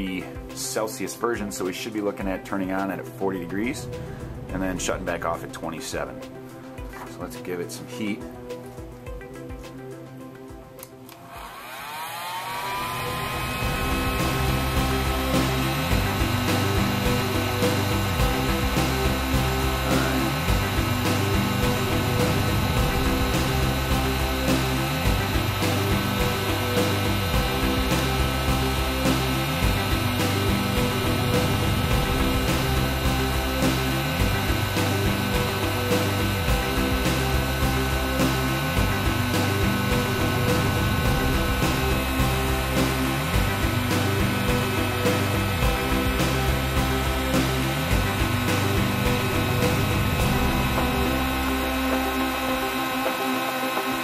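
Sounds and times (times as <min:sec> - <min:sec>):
background music with beat: 0:00.0 - 0:11.3, 0:12.7 - 0:54.0
heat gun whining and blowing: 0:10.8 - 0:54.0.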